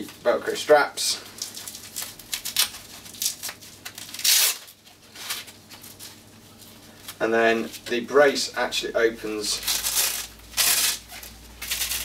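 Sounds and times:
velcro straps ripping: 1.4s - 6.0s, 9.6s - 12.0s.

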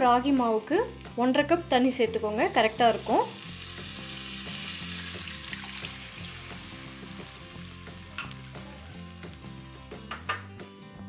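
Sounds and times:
soft background music: 0.0s - 11.0s
spices sizzling in hot oil: 0.0s - 11.0s
water poured into pan: 3.1s - 8.6s.

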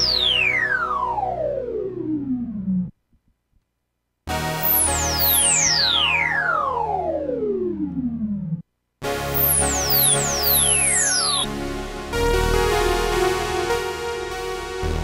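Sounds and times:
synthesizer falling pitch sweeps: 0.0s - 3.0s, 4.3s - 13.2s
synthesizer steady chord: 0.0s - 3.0s, 4.3s - 15.0s.

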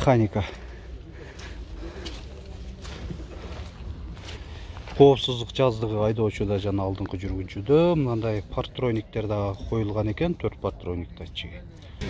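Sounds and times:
footsteps on wet mud: 0.0s - 10.2s
faint voices: 0.0s - 12.0s.

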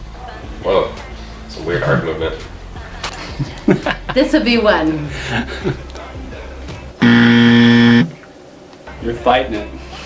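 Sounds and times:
low buzzer: 7.0s - 8.2s.

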